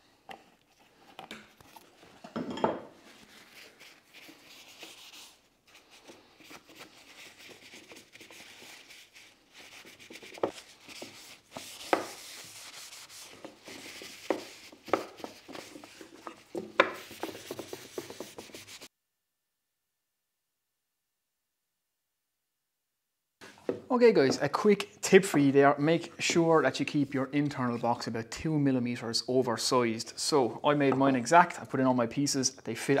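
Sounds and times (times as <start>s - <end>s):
paper towel rubbing wood: 3.2s - 18.9s.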